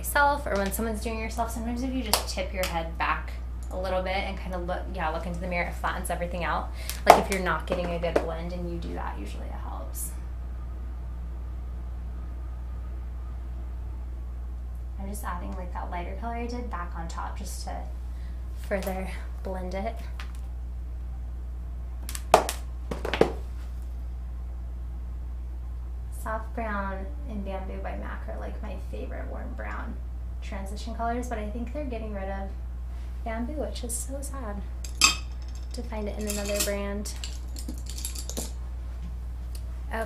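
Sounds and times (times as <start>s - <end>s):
low electrical hum: 0.0s - 40.0s
makeup items clicking and clinking: 34.9s - 38.6s.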